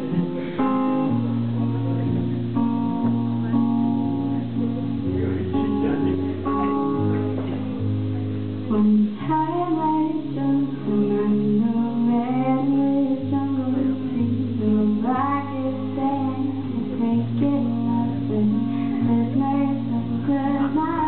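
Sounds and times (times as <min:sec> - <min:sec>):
acoustic guitar strummed chords: 0:00.0 - 0:21.0
woman singing: 0:08.7 - 0:21.0.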